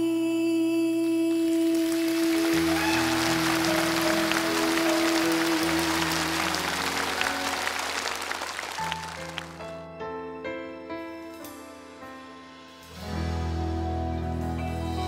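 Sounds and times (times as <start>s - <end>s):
audience applause: 1.7s - 9.7s
live band playing: 1.9s - 9.7s, 12.4s - 15.0s.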